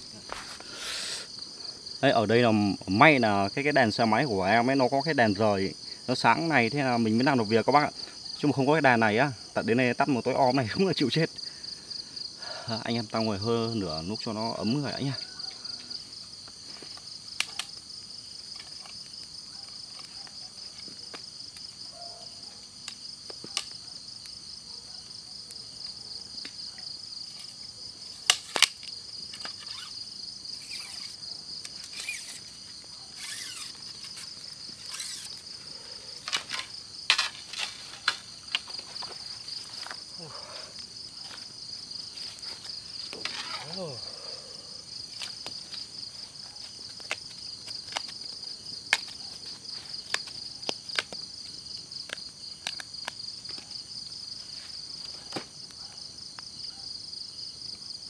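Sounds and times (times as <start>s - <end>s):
crickets trilling: 0.0s - 58.0s.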